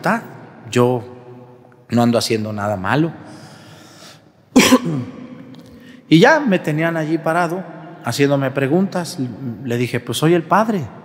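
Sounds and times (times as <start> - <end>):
man coughing: 4.5 - 5.2.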